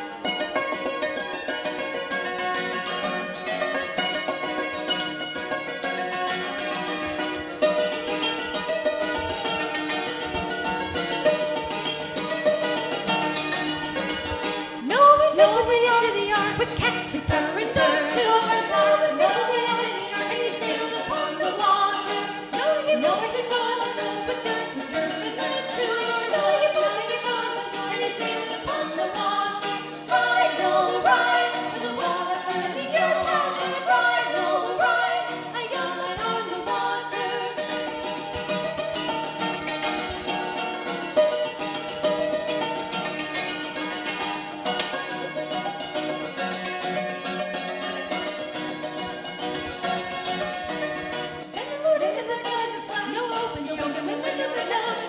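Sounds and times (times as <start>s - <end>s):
hammered dulcimer playing: 0.0s - 51.8s
voices singing: 14.8s - 37.9s, 51.6s - 55.0s.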